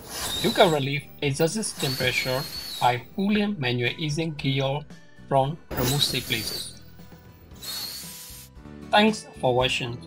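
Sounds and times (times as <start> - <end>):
steam hissing from safety valve: 0.0 - 3.1, 5.8 - 6.9, 7.6 - 8.6
faint background music: 0.1 - 10.0.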